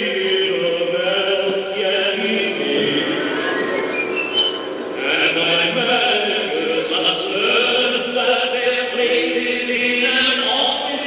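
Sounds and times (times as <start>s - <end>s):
cast singing operatically: 0.0s - 11.0s.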